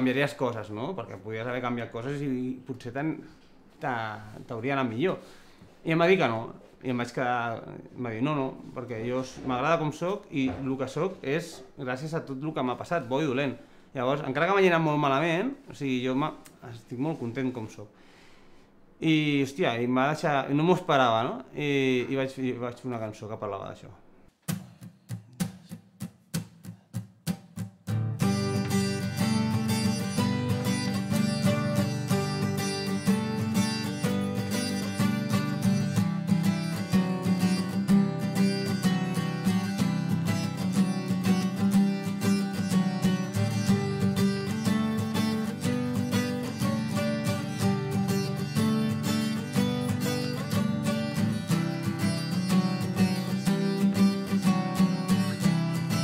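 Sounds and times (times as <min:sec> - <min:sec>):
acoustic guitars playing: 0:24.3 - 0:56.0.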